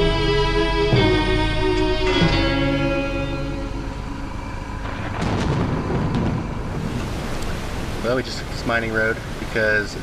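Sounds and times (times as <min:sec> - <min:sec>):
guitar music: 0:00.0 - 0:06.3
low rumbling noise: 0:00.0 - 0:10.0.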